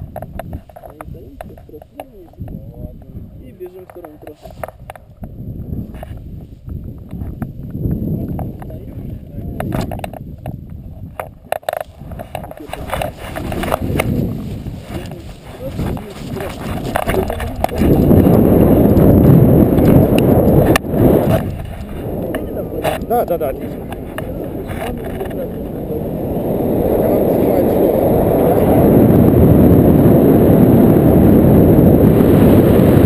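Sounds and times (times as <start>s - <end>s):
wind buffeting microphone: 0.0s - 33.0s
footsteps: 3.9s - 7.7s, 11.6s - 19.2s
harness and straps clicking: 9.6s - 18.3s.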